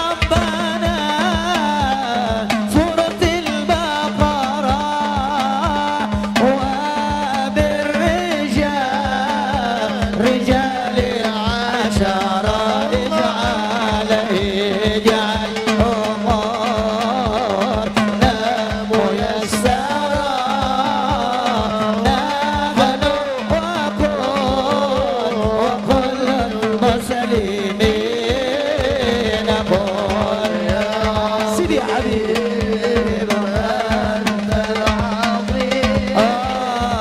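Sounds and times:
drum beat: 0:00.0 - 0:37.0
man singing through a microphone: 0:00.0 - 0:37.0.

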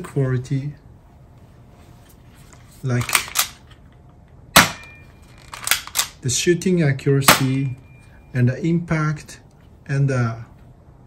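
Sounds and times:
airsoft pistol shot: 0:04.6 - 0:05.0, 0:07.3 - 0:07.6
faint ring: 0:07.7 - 0:08.4.

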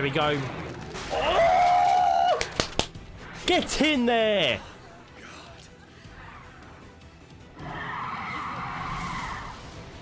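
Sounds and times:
soft background music: 0:02.0 - 0:10.0.

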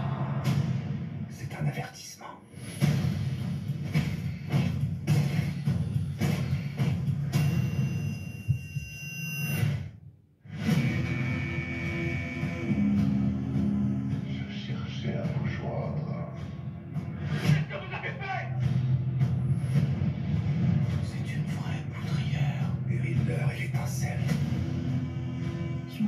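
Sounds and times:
dramatic music with percussive hits: 0:00.0 - 0:01.5, 0:02.5 - 0:08.1, 0:10.6 - 0:26.0.

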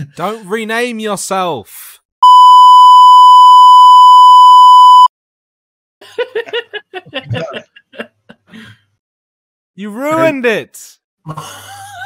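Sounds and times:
steady bleep tone: 0:02.2 - 0:05.1.

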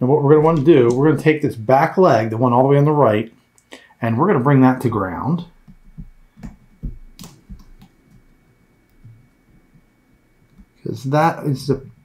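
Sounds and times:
wire clicking into breadboard: 0:05.7 - 0:08.0.

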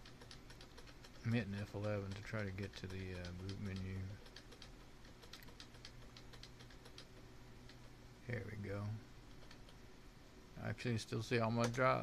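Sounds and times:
keyboard key tapping: 0:00.0 - 0:08.0.

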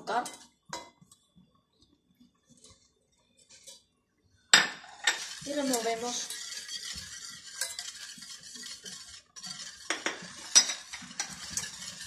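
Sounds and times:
whisk tapping saucepan: 0:04.9 - 0:12.0
whisk clattering in metal pan: 0:05.0 - 0:12.0.

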